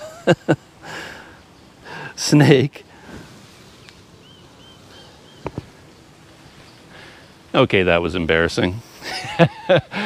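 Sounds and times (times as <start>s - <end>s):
handling thumps on microphone: 5.4s - 5.7s.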